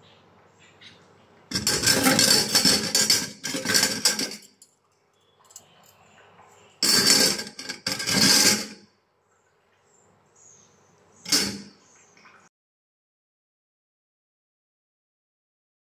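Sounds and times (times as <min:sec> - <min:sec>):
metal utensils clattering in bowl: 0:01.5 - 0:08.8, 0:11.2 - 0:11.8.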